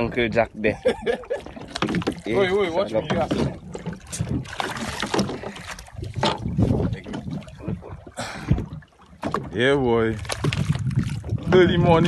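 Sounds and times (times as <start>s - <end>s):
water splashing against boat: 0.0s - 12.0s
knocks and bumps on hull: 0.9s - 12.0s.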